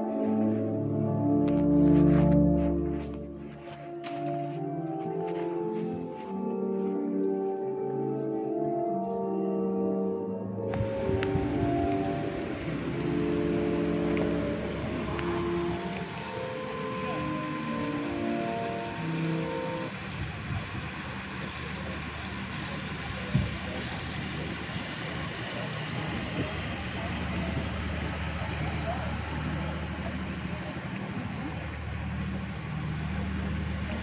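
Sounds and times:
boat engine hum: 0.0 - 34.0
sustained musical tones: 0.0 - 34.0.

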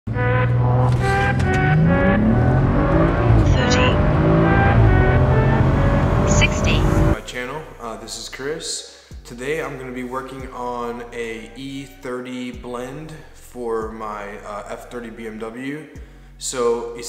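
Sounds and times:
car engine accelerating hard: 0.1 - 7.2.

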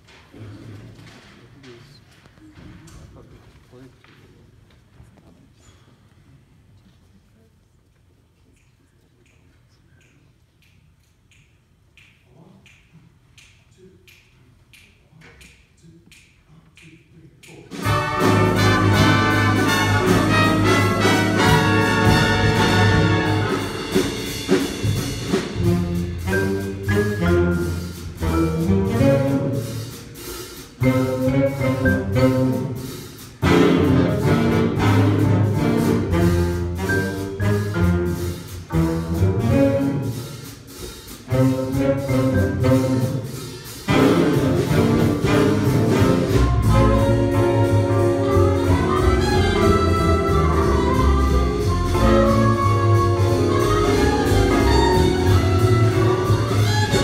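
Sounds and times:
jazz big band playing: 17.6 - 57.0.

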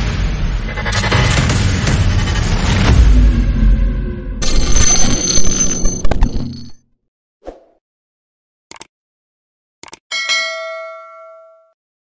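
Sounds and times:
notification bell ding: 10.1 - 11.8.

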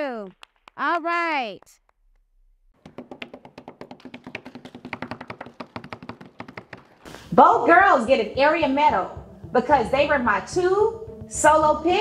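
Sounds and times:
people clapping: 0.0 - 2.0, 2.9 - 7.0.

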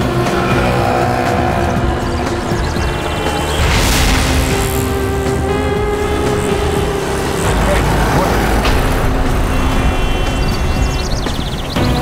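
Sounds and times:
car engine rumble: 0.0 - 12.0
dramatic background score: 0.0 - 12.0.

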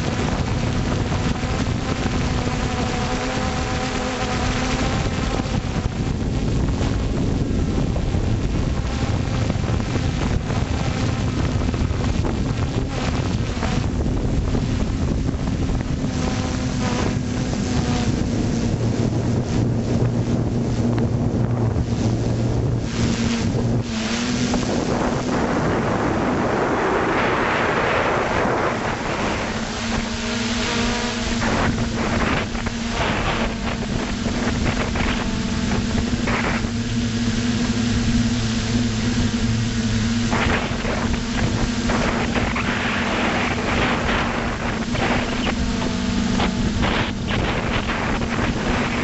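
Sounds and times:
drone propellers humming: 0.0 - 49.0
wind rushing over microphone: 0.0 - 49.0.

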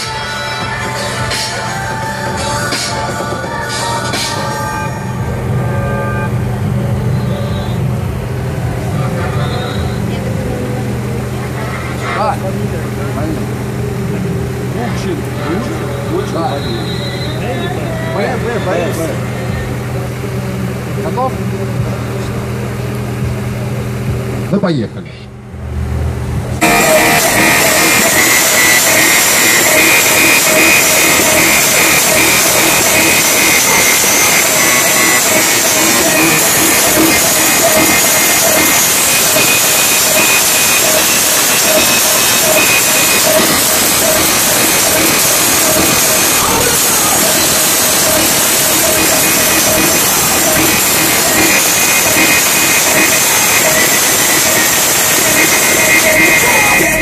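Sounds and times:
distorted loud car stereo music: 0.0 - 25.6, 26.2 - 57.0.

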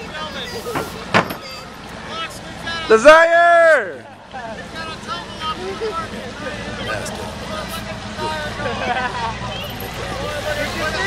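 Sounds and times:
motorboat engine humming: 4.0 - 11.0.

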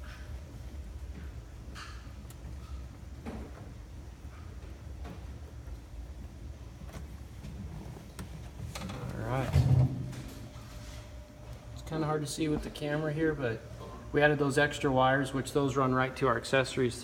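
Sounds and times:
wiring clicks and rustling: 0.0 - 10.6
low steady rumble: 0.0 - 17.0.

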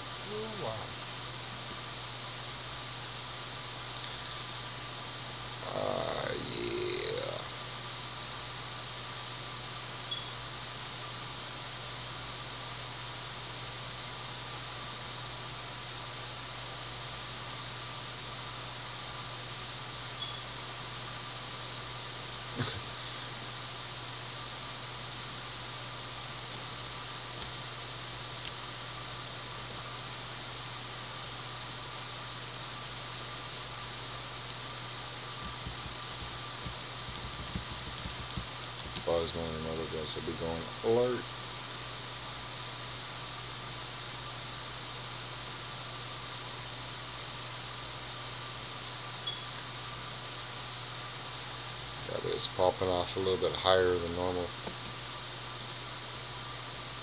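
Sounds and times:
steady hiss with low hum: 0.0 - 57.0.

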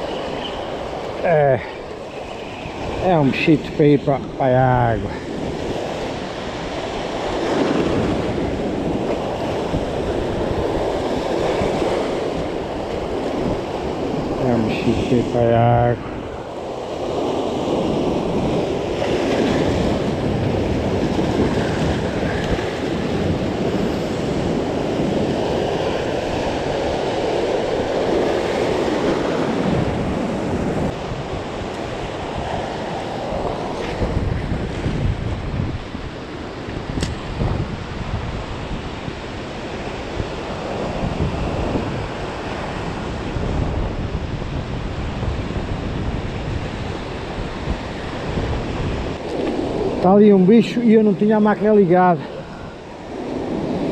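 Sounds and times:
surf washing over rocks: 0.0 - 53.9
wind buffeting microphone: 0.0 - 53.9.

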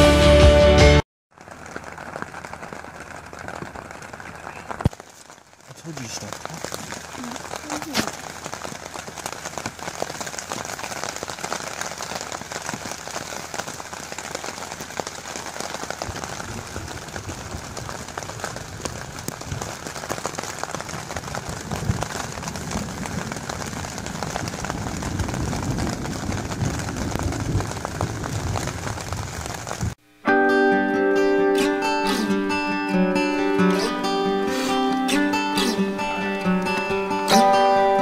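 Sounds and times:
rain on a tent: 1.3 - 30.0, 31.6 - 38.0.

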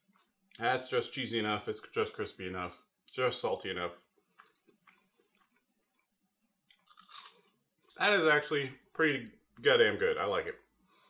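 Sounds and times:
chewing crispy food: 4.2 - 8.0.

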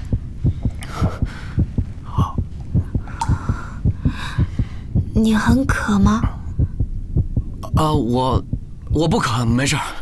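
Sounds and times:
heartbeat thumps: 0.0 - 9.2.

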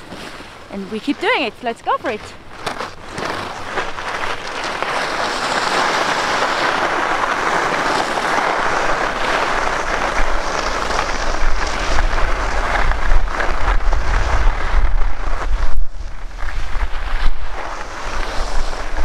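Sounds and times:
skis scraping over snow: 0.0 - 19.0
wind buffeting microphone: 0.0 - 19.0.

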